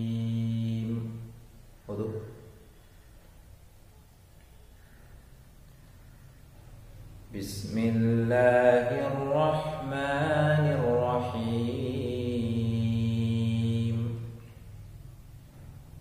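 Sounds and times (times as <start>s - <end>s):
man chanting recitation: 0.0s - 2.6s, 7.3s - 14.5s.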